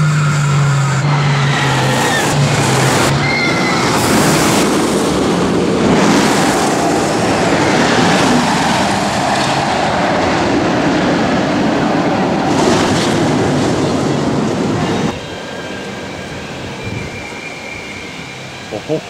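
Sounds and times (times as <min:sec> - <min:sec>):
roller coaster rumbling on track: 0:00.0 - 0:19.0.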